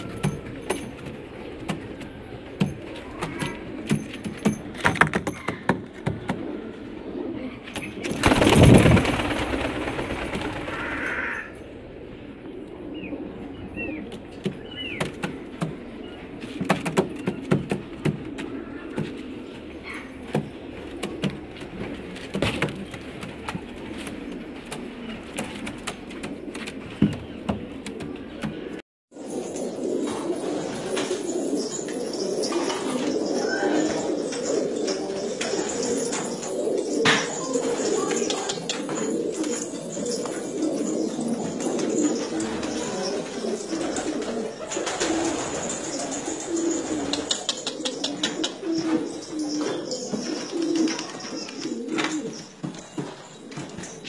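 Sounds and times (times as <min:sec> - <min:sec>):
pigeon cooing: 0:00.0 - 0:54.0.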